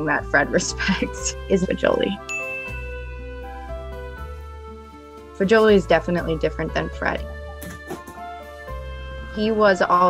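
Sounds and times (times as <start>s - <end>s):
soft background music: 0.0s - 10.0s
bright ding: 2.3s - 3.1s.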